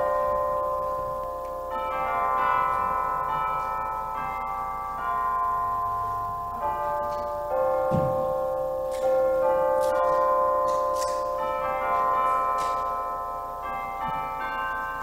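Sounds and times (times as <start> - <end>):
bell-like chime chords: 0.0 - 15.0.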